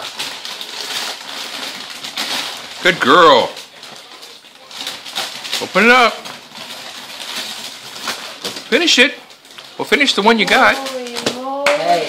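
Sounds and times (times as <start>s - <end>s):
wrapping paper crinkling: 0.0s - 12.0s.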